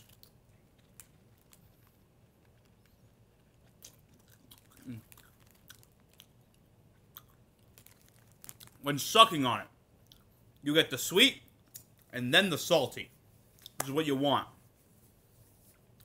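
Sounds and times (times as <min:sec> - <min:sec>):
person chewing peanut: 0:00.0 - 0:08.8, 0:10.0 - 0:10.6.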